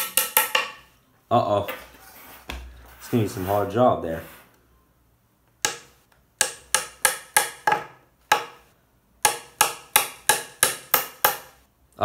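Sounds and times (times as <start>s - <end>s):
hammer striking wood: 0.0s - 0.8s, 5.6s - 11.6s.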